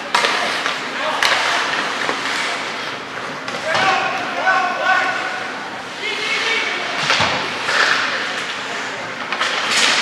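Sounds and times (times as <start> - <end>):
stick and puck clacks: 0.0 - 3.8, 7.0 - 8.6, 9.2 - 10.0.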